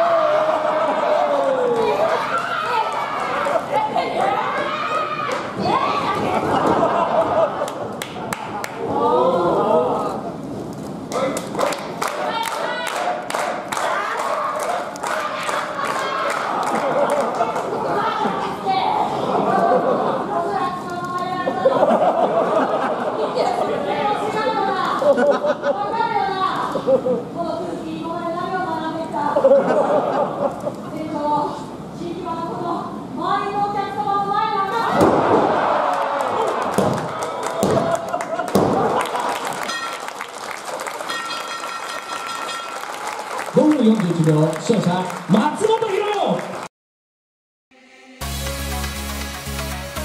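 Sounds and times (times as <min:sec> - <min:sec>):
overlapping voices in a hall: 0:00.0 - 0:10.3, 0:11.1 - 0:18.6, 0:34.7 - 0:46.7
audience applauding: 0:07.2 - 0:08.8, 0:11.1 - 0:18.1, 0:35.3 - 0:46.7
high ringing tone: 0:39.7 - 0:40.1, 0:41.1 - 0:42.9.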